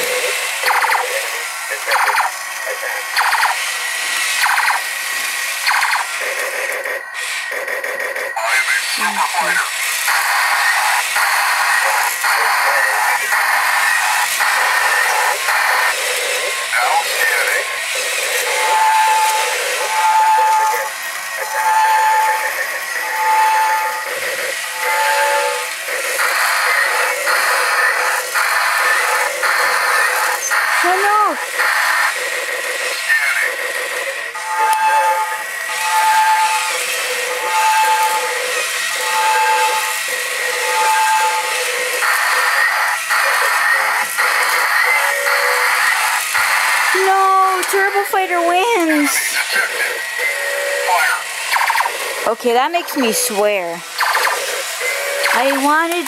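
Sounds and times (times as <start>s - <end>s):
toy robots whirring: 0.0s - 56.0s.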